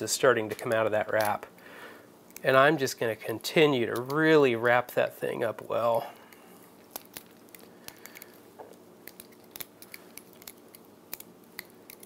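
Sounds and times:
elastic thread winding clicks: 9.0s - 12.0s.

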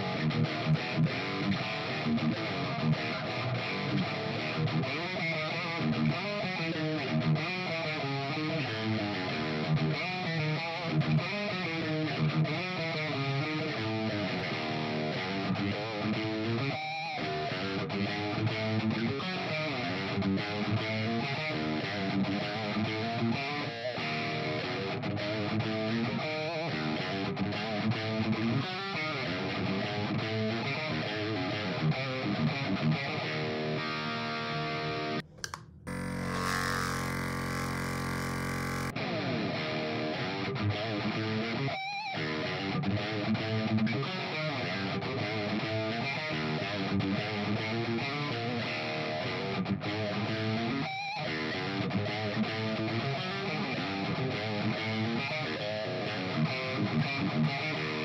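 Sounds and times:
electric guitar riffs through amp: 35.0s - 40.4s.

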